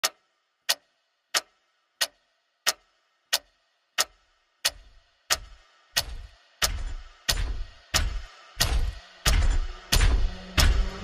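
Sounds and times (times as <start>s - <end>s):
sharp clock-like ticks: 0.0s - 11.0s.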